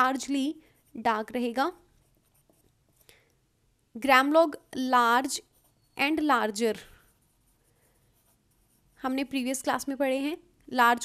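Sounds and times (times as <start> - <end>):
pen scratching on paper: 1.9 - 3.0, 7.0 - 9.4.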